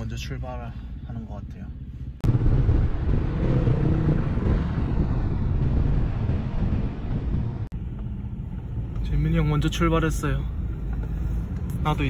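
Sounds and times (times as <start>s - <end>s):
car engine and road rumble: 0.0s - 12.0s
wind buffeting microphone: 2.2s - 7.8s.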